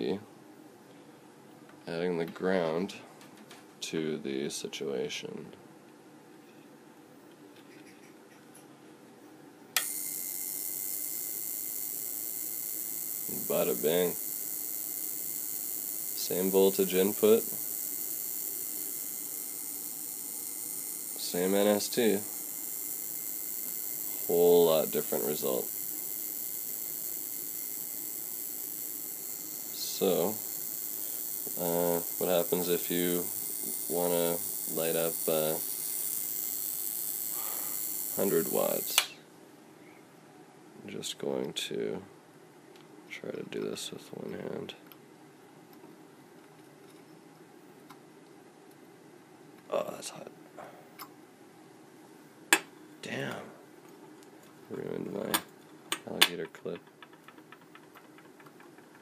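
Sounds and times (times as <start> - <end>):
spark gap buzzing hiss: 9.8 - 39.2
spark gap snap: 38.1 - 39.2.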